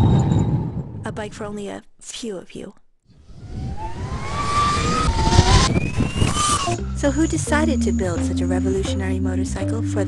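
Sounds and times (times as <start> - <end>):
tyre and wind rush: 3.3 - 6.9
electric motorbike motor whining: 3.6 - 6.8.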